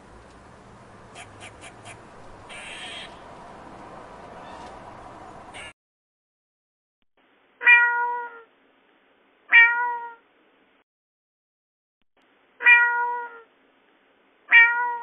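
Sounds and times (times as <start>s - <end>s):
cat meowing: 2.5s - 3.2s, 7.6s - 8.5s, 9.5s - 10.2s, 12.6s - 13.5s, 14.5s - 15.0s.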